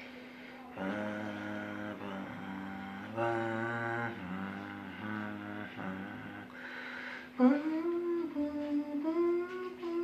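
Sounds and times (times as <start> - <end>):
man humming: 0.8 - 6.6, 7.3 - 10.0.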